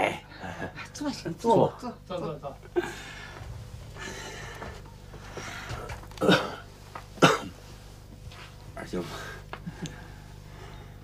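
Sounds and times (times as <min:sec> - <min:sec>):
man coughing: 0:06.2 - 0:07.6.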